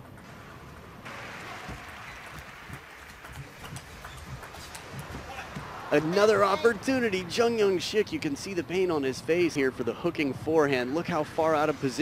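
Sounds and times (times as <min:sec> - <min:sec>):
crowd noise: 0:01.0 - 0:12.0.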